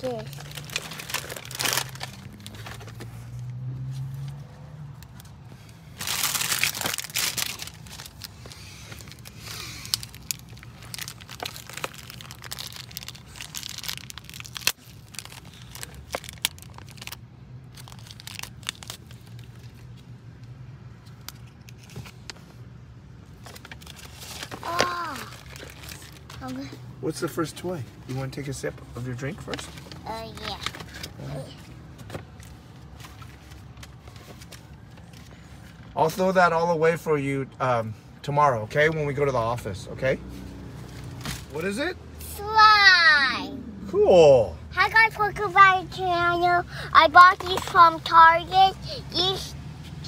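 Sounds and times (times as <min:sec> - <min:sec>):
plastic packet crinkling: 0:00.3 - 0:02.7, 0:06.0 - 0:08.3, 0:09.1 - 0:19.6.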